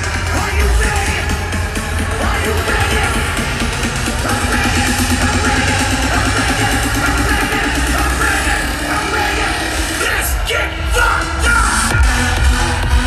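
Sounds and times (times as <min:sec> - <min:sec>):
electronic dance music: 0:00.0 - 0:13.0.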